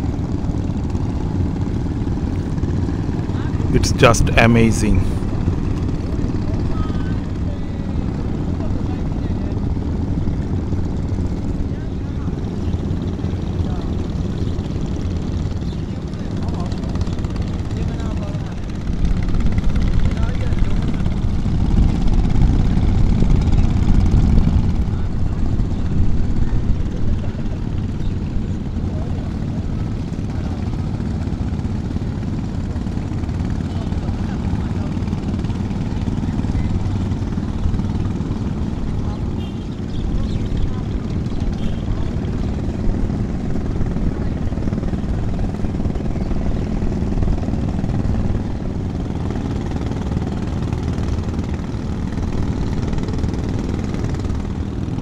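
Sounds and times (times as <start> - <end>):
small boat engine droning: 0.0 - 4.2, 5.1 - 55.0.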